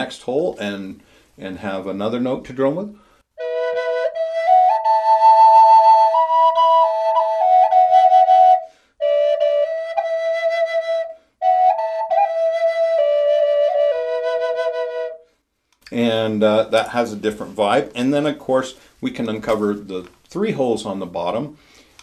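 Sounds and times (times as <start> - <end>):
slow flute melody: 3.3 - 15.5
flute drone note: 3.4 - 15.2.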